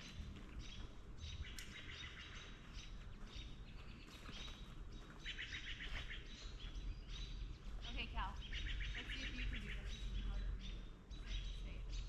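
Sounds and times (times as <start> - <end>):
songbirds singing and chirping: 0.0 - 12.0
steady low rumble: 0.0 - 12.0.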